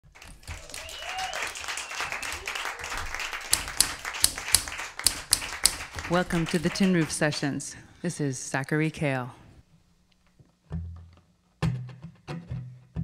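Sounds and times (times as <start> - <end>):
manual typewriter typing: 3.5 - 7.4.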